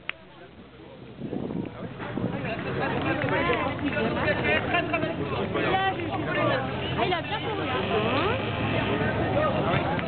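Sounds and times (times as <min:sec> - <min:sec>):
spectators talking: 0:00.0 - 0:10.0
race car engines driving past: 0:00.6 - 0:10.0.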